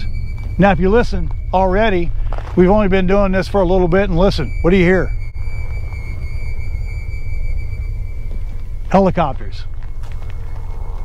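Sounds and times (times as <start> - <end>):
helicopter rotor rumble: 0.0 - 11.0.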